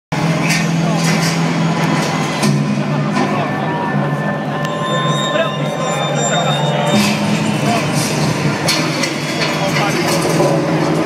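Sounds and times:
low drone over speakers: 0.1 - 11.0
crowd shouts: 1.5 - 10.4.

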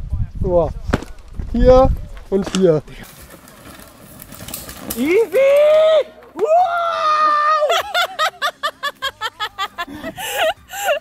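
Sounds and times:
mountain bike tyres on dirt trail: 0.6 - 7.3
bike rattling over roots: 1.0 - 6.4.

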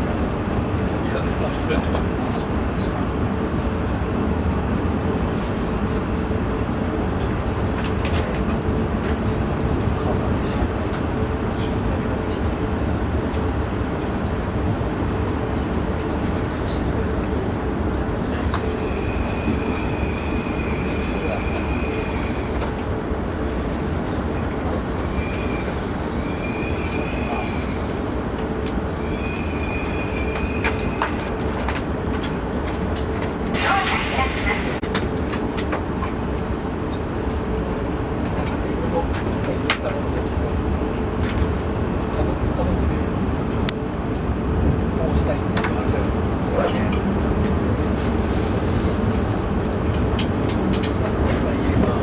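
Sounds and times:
train low rumble: 0.0 - 52.0.

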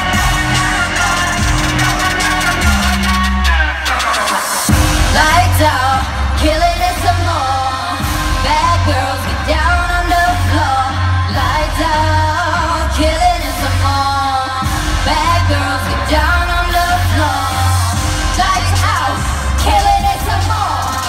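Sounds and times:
heavy bass beat: 0.0 - 21.0
pop song over sound system: 0.0 - 21.0.

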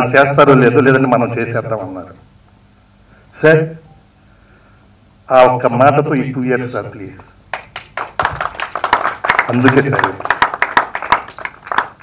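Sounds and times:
people clapping: 7.5 - 12.0.

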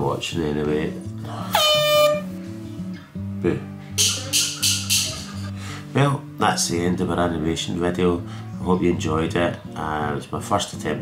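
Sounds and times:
background music: 0.0 - 11.0
loud horn-like blast: 1.6 - 2.3.

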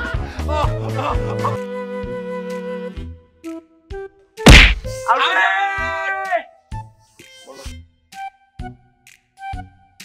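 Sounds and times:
loud whack: 4.5 - 4.9.

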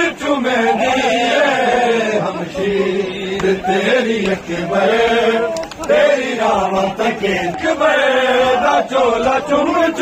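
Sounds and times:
man chanting a lament: 0.0 - 10.0.

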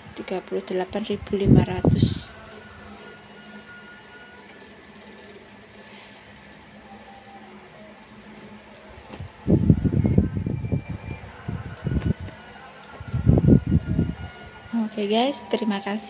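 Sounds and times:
room hum: 0.0 - 16.0.

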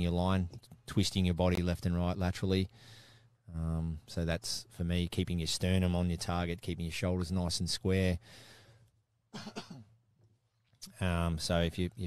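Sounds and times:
man clearing his throat: 9.3 - 9.9.

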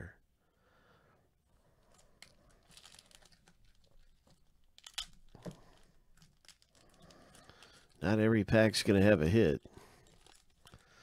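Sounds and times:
foil wrapper crinkling and tearing: 1.9 - 8.2, 9.8 - 11.0.

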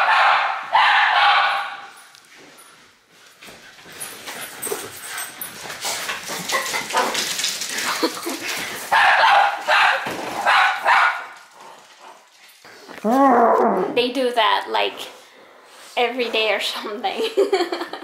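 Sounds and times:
dog barking and yipping: 0.0 - 2.0, 6.3 - 7.4, 8.8 - 11.4
rustling and handling noise: 1.8 - 13.3.

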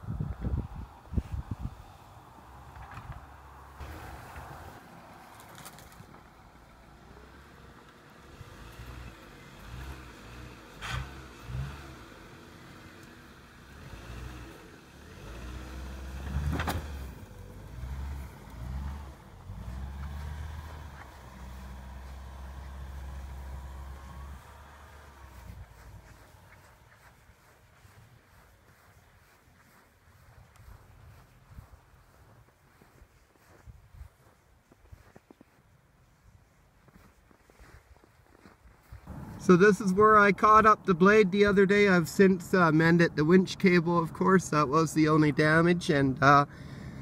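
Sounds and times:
distant car engine revving: 1.8 - 27.5, 39.1 - 47.0.

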